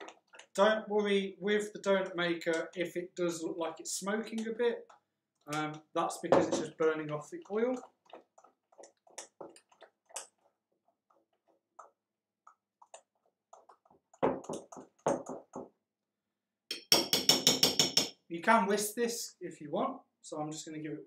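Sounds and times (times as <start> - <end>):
utensil stirring batter in glass bowl: 0.0 - 15.9.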